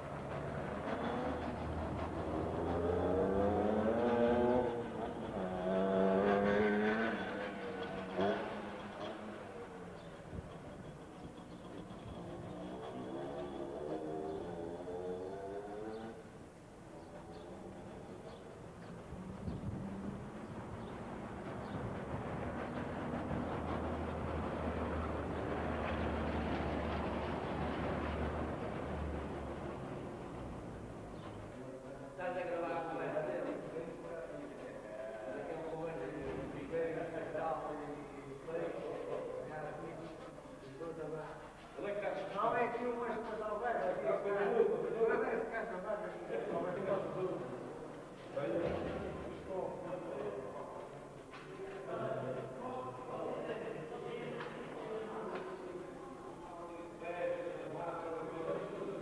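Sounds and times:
engine accelerating: 0.0 - 16.2
passing vehicle: 0.0 - 31.8.

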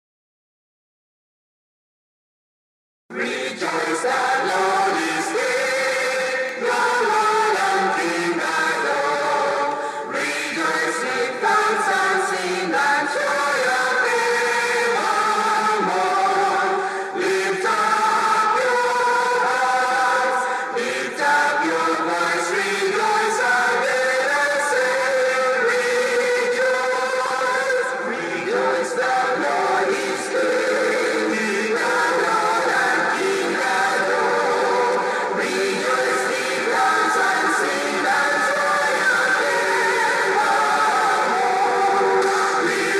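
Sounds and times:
choir singing sustained notes: 3.1 - 42.9.

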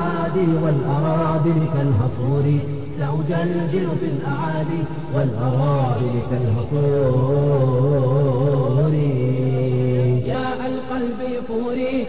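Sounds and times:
vocal chant with held notes: 0.0 - 12.0.

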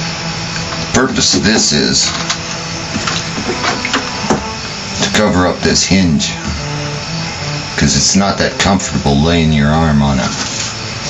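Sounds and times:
low hum and hiss: 0.0 - 11.0.

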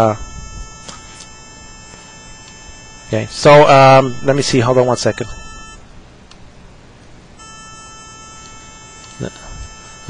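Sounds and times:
buzzy square-wave tone: 0.0 - 5.8, 7.4 - 10.0.

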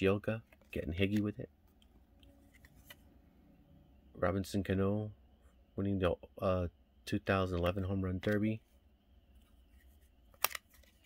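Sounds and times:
cards rustling: 0.3 - 3.1, 9.4 - 11.0.

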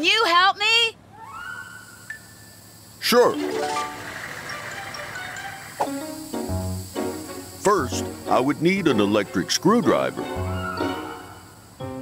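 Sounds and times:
faint cartoon music: 3.0 - 12.0.

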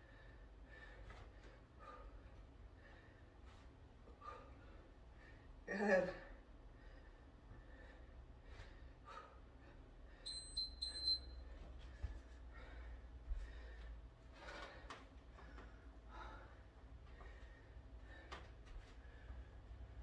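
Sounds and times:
interval timer short high beeps: 10.2 - 11.5.

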